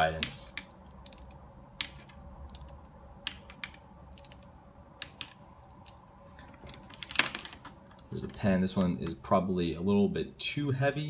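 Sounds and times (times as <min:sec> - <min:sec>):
plastic pens clicking and tapping: 0:00.1 - 0:09.2.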